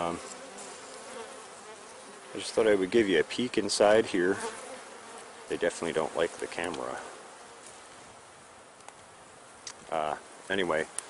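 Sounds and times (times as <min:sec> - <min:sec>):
honey bees buzzing: 0:00.0 - 0:11.0.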